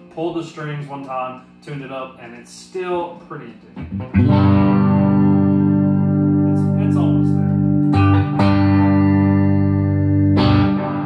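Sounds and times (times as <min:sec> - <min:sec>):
electric guitar chord ringing: 0:03.8 - 0:11.0.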